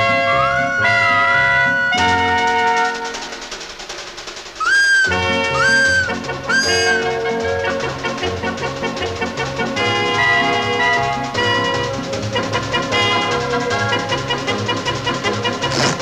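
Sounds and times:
instrumental cartoon music: 0.1s - 16.0s
rising whistle toots: 4.6s - 7.3s.

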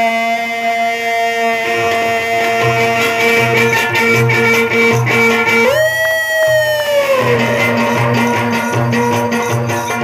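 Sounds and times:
long sliding lead note: 0.0s - 10.0s
pulsing bass beat: 0.7s - 10.0s.

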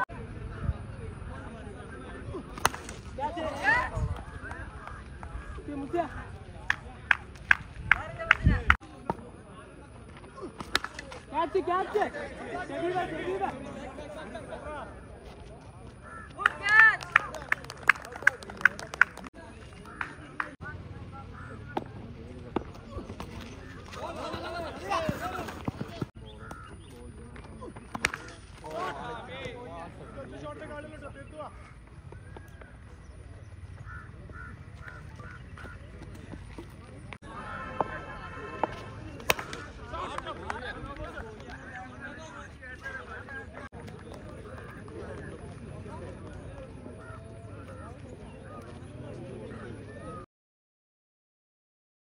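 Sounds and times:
people calling out and chattering: 0.0s - 50.3s
bird calling: 16.0s - 16.4s, 21.1s - 24.8s, 26.2s - 28.5s, 29.8s - 38.2s.

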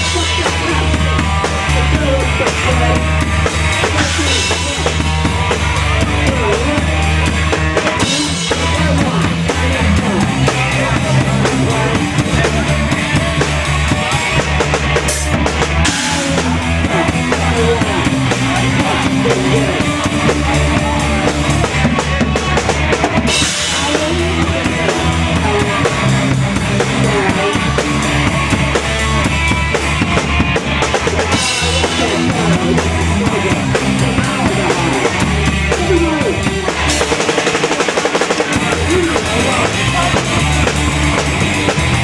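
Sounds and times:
punk rock band playing live: 0.0s - 42.0s.

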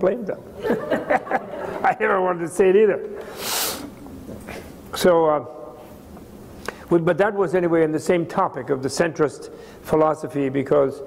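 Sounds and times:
man's sharp breath through nose: 3.2s - 3.9s.

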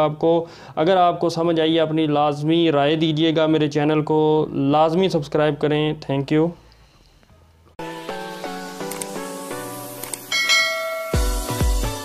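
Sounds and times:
background music: 7.8s - 12.0s
bell chime sound effect: 10.3s - 11.6s
electronic beat with deep thumps: 11.1s - 12.0s.

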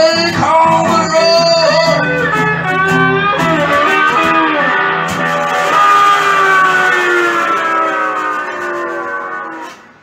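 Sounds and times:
electric guitar chord ringing: 1.7s - 9.9s.

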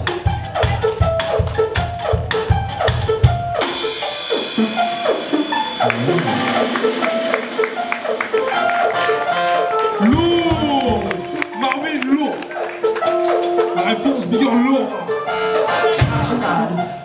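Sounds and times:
live band music: 0.0s - 17.0s.

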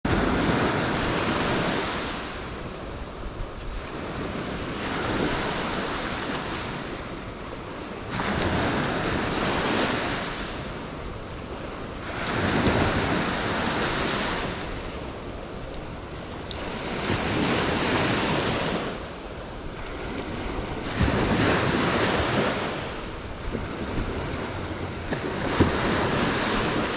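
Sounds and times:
small waves breaking on beach: 0.1s - 26.9s.

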